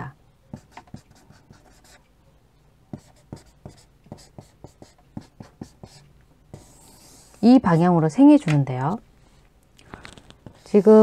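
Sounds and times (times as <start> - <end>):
chalk tapping and scratching on board: 2.9 - 7.6.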